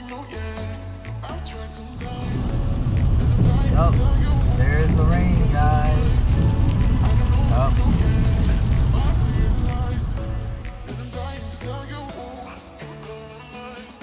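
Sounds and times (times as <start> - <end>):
music: 0.0 - 14.0
car engine and road rumble: 1.9 - 11.6.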